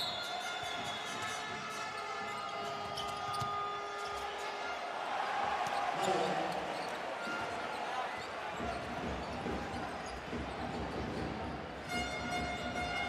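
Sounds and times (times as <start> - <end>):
basketball bouncing on court: 6.7 - 11.8.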